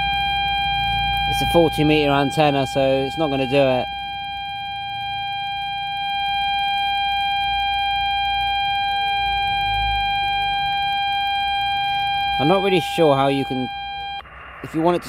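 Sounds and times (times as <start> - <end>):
steady single-pitch radio tone: 0.0 - 15.0.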